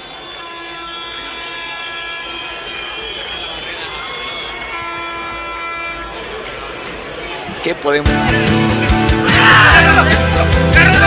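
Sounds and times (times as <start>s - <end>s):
fan's horn blowing: 0.0s - 6.7s
stadium crowd noise: 0.0s - 11.0s.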